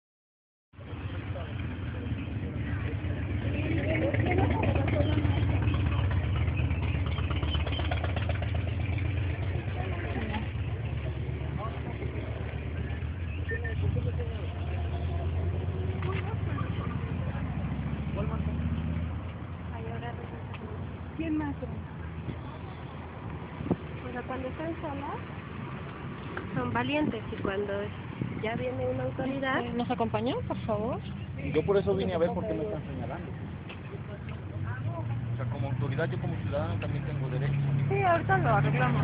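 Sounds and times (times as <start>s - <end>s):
people talking: 0.8s - 7.0s, 9.5s - 18.7s, 19.7s - 22.8s, 24.0s - 25.2s, 26.5s - 39.0s
low steady rumble: 0.8s - 39.0s.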